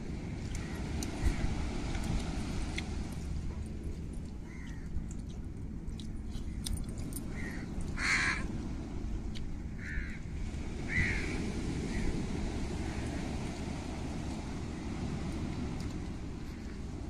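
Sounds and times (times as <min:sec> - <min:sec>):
wind rumble on microphone: 0:00.0 - 0:17.0
crow cawing: 0:04.5 - 0:04.9, 0:07.4 - 0:08.5, 0:09.8 - 0:10.2, 0:10.9 - 0:12.1.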